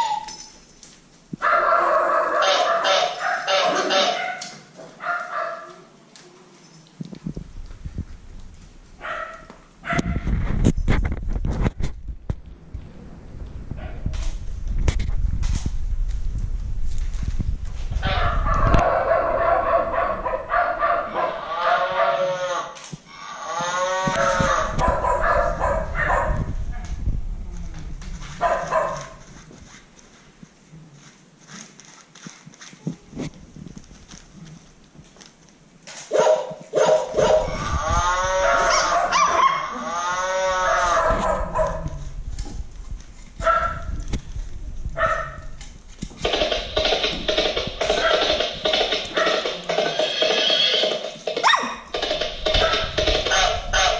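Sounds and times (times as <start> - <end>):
toy playing animal sounds and tones: 46.2 - 51.2.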